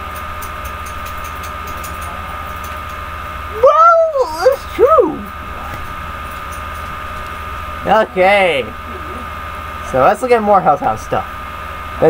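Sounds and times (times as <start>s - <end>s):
background hum: 0.0s - 12.0s
high whine: 0.0s - 12.0s
wavering vocal sound: 8.1s - 9.4s.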